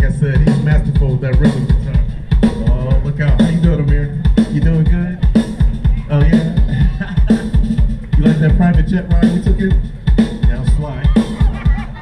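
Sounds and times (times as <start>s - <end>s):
funk band playing: 0.0s - 12.0s
kick drum beat: 0.0s - 12.0s.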